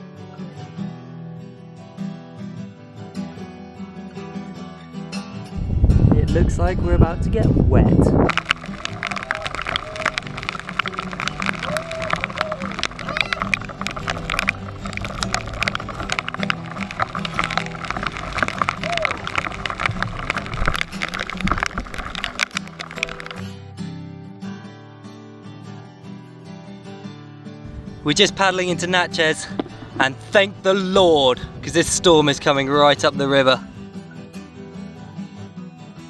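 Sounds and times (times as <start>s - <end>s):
wind: 3.8s - 24.3s, 27.6s - 35.7s
heavy rain on water: 8.3s - 23.4s.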